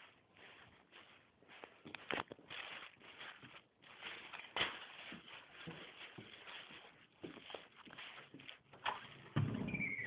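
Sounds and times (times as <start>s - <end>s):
faint rustling and shuffling: 0.0s - 10.0s.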